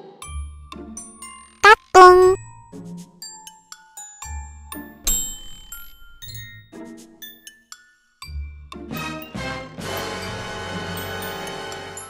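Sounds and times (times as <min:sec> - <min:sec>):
light tinkling music: 0:03.2 - 0:09.3.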